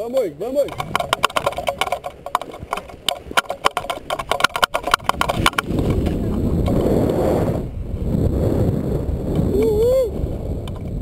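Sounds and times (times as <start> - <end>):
wind rushing on microphone: 0.0 - 11.0.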